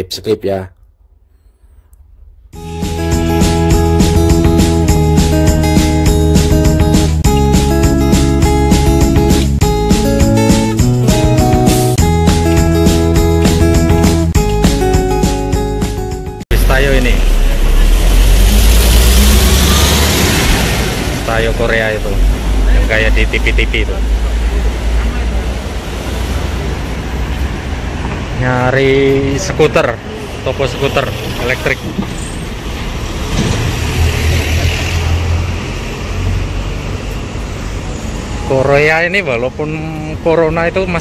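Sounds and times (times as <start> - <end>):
street traffic: 1.6 - 41.0
bus engine rumbling: 1.9 - 38.5.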